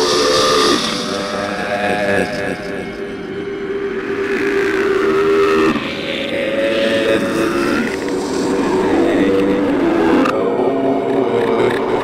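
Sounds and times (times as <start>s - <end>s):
droning noise music: 0.0s - 12.0s.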